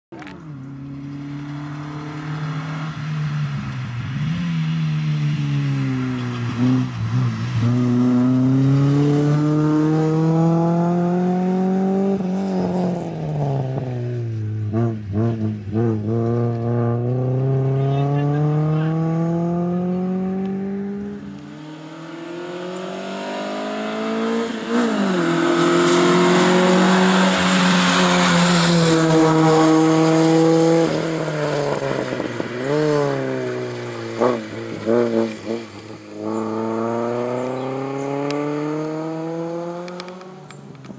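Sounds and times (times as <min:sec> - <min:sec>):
race car engine revving: 0:00.2 - 0:40.8.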